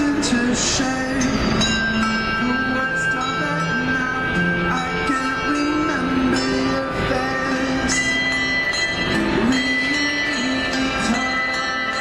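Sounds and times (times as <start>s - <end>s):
handbells ringing a melody: 0.0s - 12.0s
low bell note: 0.0s - 12.0s.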